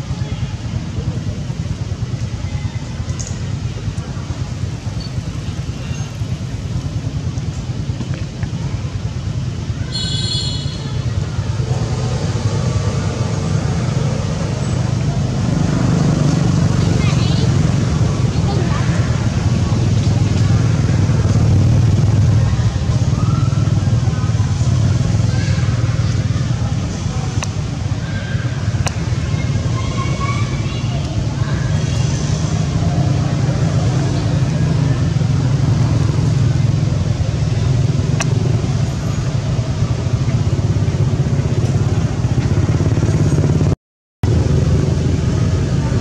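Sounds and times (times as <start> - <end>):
motor traffic rumble: 0.0 - 46.0.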